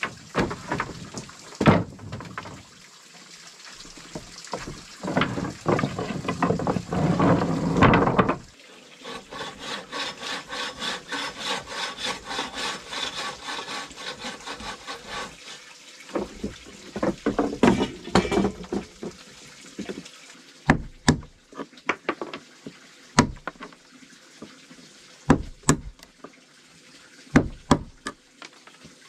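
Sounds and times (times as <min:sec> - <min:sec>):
wood knocking on plank floor: 0:00.0 - 0:02.6, 0:04.2 - 0:08.5, 0:16.1 - 0:19.2, 0:20.7 - 0:21.3, 0:23.2 - 0:23.7, 0:25.3 - 0:26.0, 0:27.4 - 0:28.2
bow saw cutting log: 0:09.0 - 0:18.5, 0:23.2 - 0:23.7, 0:25.3 - 0:26.1.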